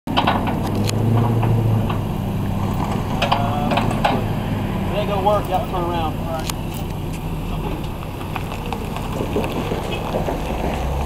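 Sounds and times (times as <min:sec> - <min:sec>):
engine idling: 0:00.1 - 0:10.8.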